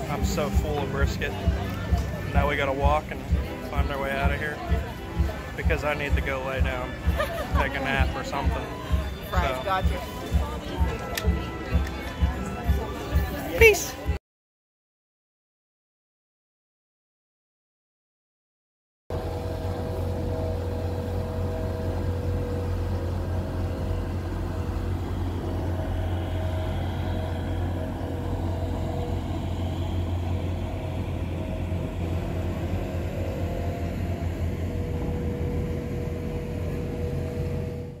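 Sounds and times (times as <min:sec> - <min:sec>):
boat engine droning: 0:00.0 - 0:14.1, 0:19.1 - 0:38.0.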